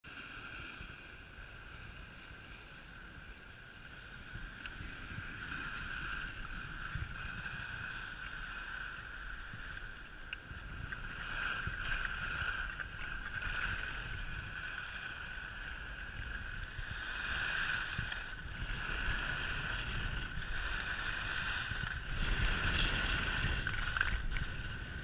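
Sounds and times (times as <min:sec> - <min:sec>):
skis scraping over snow: 0:00.1 - 0:25.0
wind buffeting microphone: 0:03.9 - 0:25.0.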